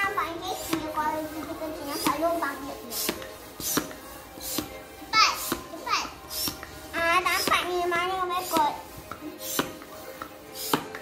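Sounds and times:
hand air pump hissing: 0:00.0 - 0:11.0.

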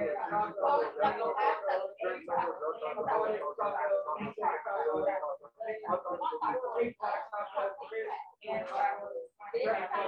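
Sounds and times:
person reading aloud: 0:00.0 - 0:10.0.

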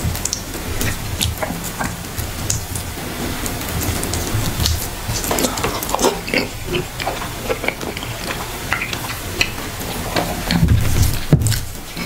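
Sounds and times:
wet chewing and lip-smacking: 0:00.0 - 0:12.0.

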